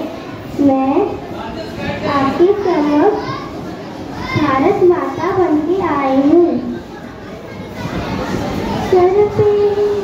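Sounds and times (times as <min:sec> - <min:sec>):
girl speaking into a microphone: 0:00.0 - 0:01.2, 0:02.0 - 0:10.0.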